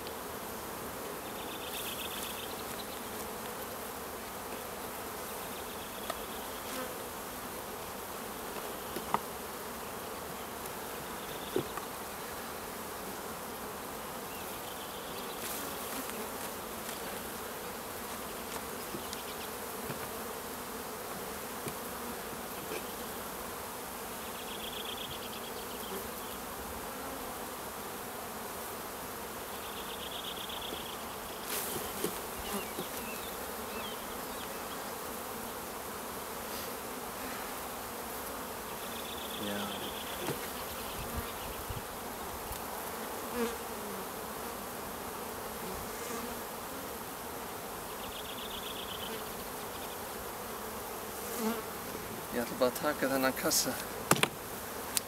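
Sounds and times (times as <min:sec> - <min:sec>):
bees humming: 0:00.0 - 0:55.0
light wooden knocks: 0:54.1 - 0:54.4.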